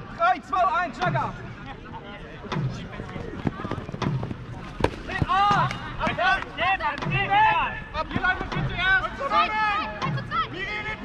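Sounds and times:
players shouting: 4.8 - 11.0.

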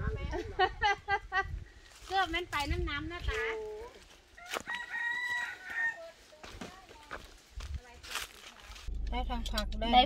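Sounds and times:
rooster crowing: 4.3 - 6.2.

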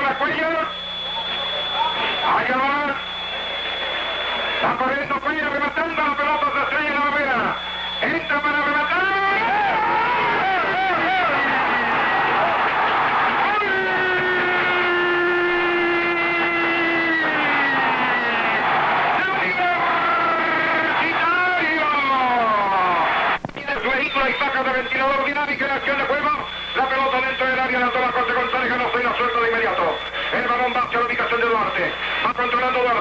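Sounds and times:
commentator shouting excitedly: 8.3 - 12.4, 19.1 - 23.0.

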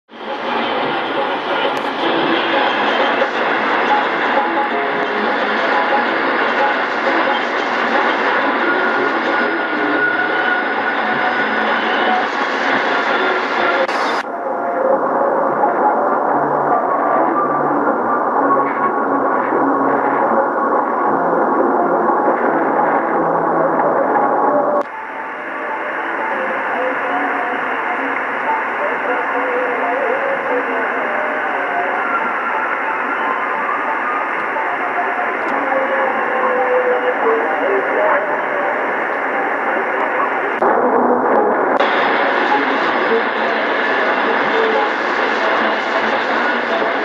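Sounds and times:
faint radio station audio: 0.1 - 47.0
radio static and hiss: 0.1 - 47.0.

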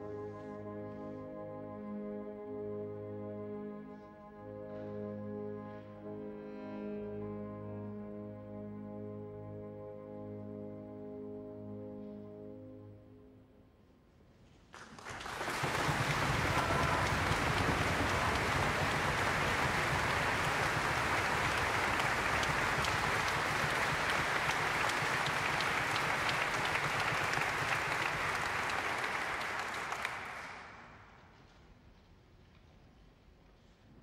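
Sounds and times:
audience applauding: 14.8 - 31.2.

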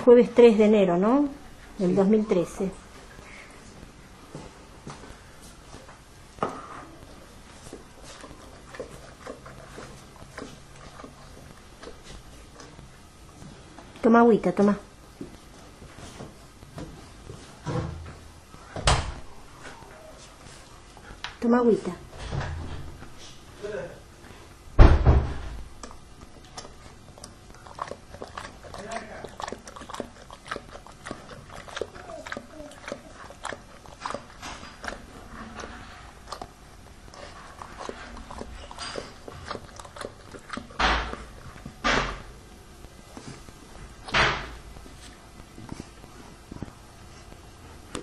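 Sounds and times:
dog lapping water: 26.3 - 35.3, 36.3 - 41.8.

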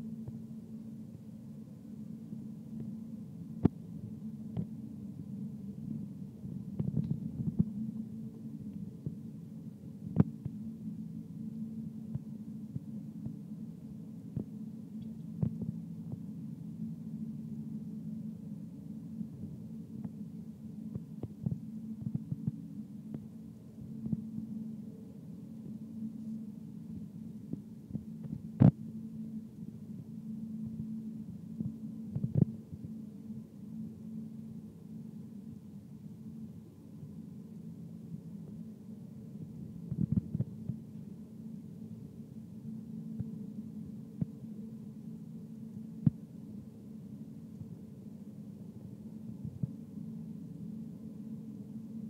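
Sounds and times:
low machine hum: 0.0 - 52.0.

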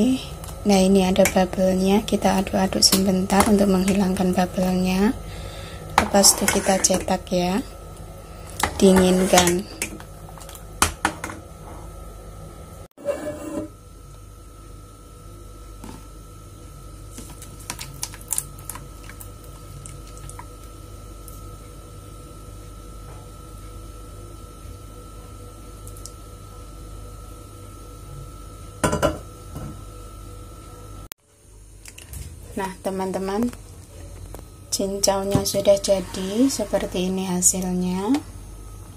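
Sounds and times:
steady low hum: 0.0 - 38.9.

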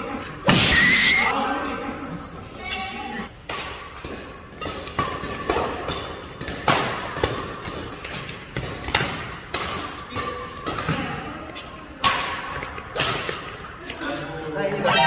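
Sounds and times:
rackets hitting shuttlecock: 2.7 - 13.6.

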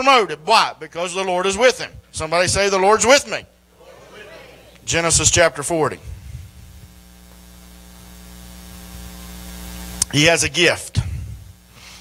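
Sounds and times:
electrical mains hum: 0.0 - 12.0
faint microphone hiss: 0.0 - 12.0.

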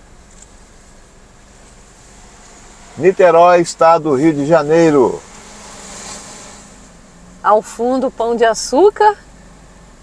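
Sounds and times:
car cabin hum and hiss: 0.0 - 10.0
low engine rumble: 0.0 - 10.0.

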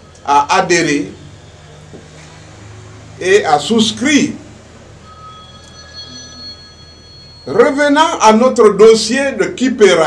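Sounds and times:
high whistling tones: 5.0 - 7.8.

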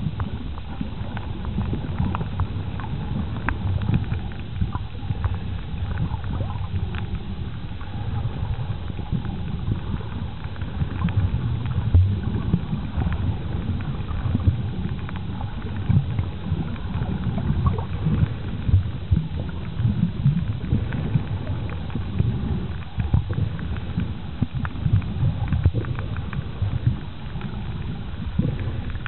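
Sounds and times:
faint clicks and crackles: 0.0 - 29.0
underwater rumble of moving water: 0.0 - 29.0.

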